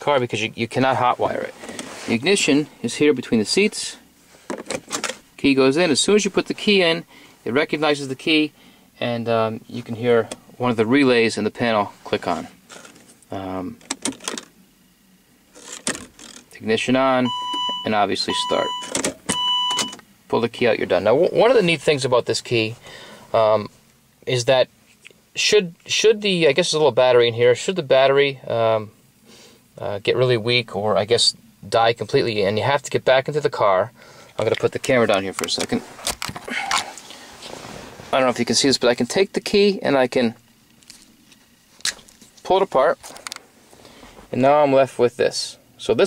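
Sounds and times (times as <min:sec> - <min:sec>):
low hiss: 0:00.0 - 0:46.0
camera handling rustle: 0:35.1 - 0:37.1.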